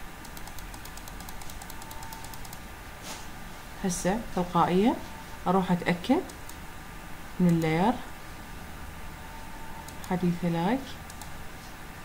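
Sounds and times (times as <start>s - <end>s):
computer mouse clicking: 0.2s - 2.6s, 6.2s - 6.6s, 7.5s - 7.7s, 9.8s - 10.2s, 11.1s - 11.4s.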